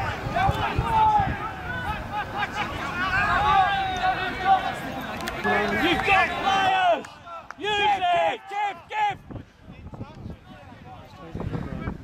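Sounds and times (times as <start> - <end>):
men shouting: 0.1 - 9.2.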